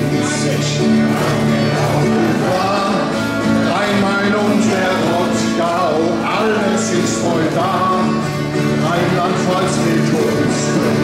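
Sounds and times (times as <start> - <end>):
acoustic guitar chords: 0.0 - 11.0
man singing folk song: 0.0 - 11.0.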